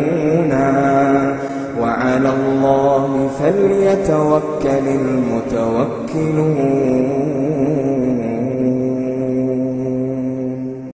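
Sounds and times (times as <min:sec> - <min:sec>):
man reciting in melodic chant: 0:00.0 - 0:11.0.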